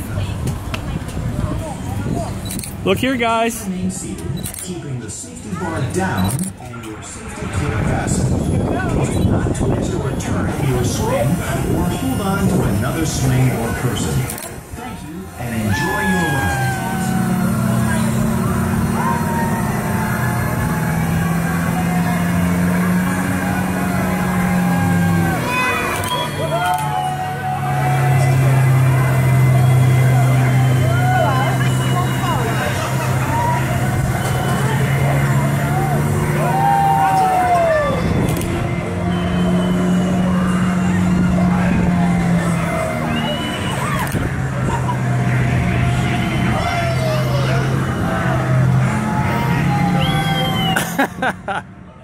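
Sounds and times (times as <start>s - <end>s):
ride drive hum: 0.0s - 52.0s
riders whooping and squealing: 7.6s - 51.6s.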